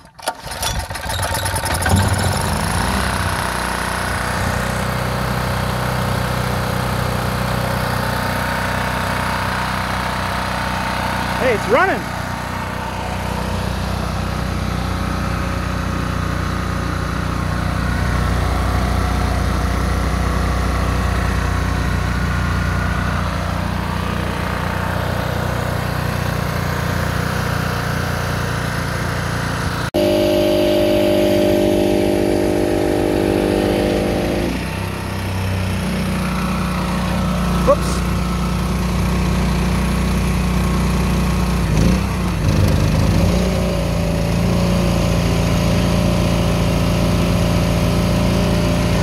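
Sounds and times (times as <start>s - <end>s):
portable generator engine running: 0.0s - 49.0s.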